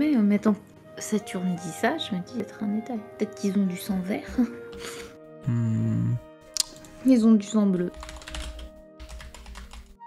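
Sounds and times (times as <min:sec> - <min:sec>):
quiet background music: 0:00.0 - 0:10.0
computer keyboard typing: 0:07.9 - 0:10.0.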